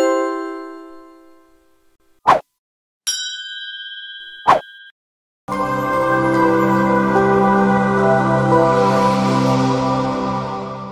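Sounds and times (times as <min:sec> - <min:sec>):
notification bell ding: 0:03.1 - 0:04.9.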